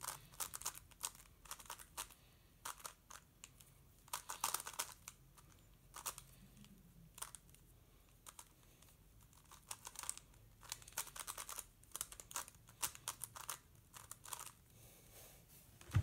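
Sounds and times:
plastic puzzle clicking: 9.4 - 14.6.

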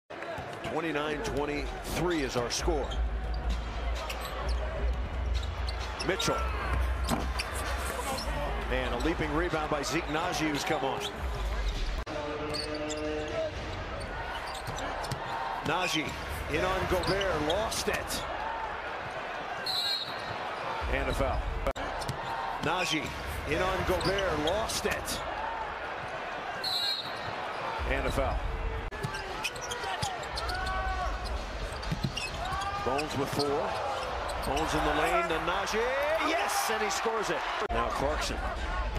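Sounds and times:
arena crowd noise: 0.1 - 38.9.

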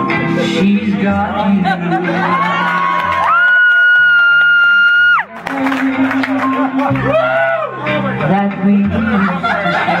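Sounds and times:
backing track music: 0.0 - 10.0.

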